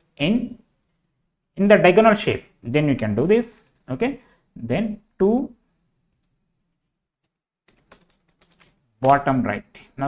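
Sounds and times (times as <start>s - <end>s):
keyboard typing: 7.2s - 9.2s.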